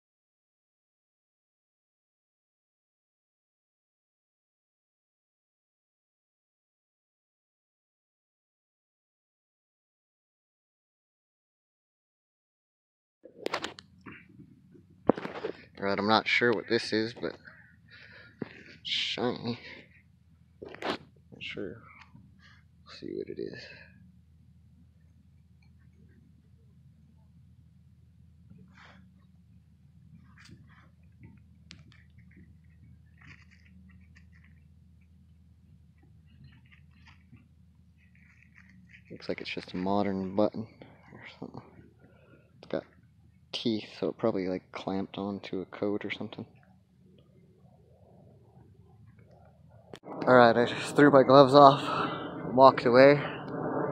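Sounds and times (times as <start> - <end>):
man saying a word: 15.8 - 17.4
brief rustle: 36.4 - 39.8.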